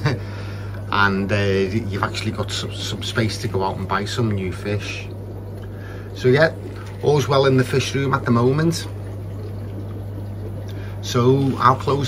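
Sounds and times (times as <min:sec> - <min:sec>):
steady low hum: 0:00.0 - 0:12.0
air bubbles breaking at surface: 0:02.2 - 0:12.0.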